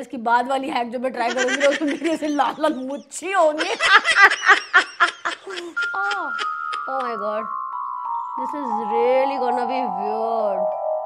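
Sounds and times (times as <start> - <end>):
woman laughing: 1.2 - 7.4.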